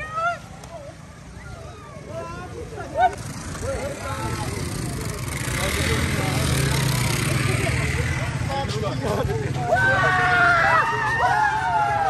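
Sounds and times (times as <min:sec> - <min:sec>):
broad rushing noise: 0:00.0 - 0:12.0
people talking: 0:00.0 - 0:12.0.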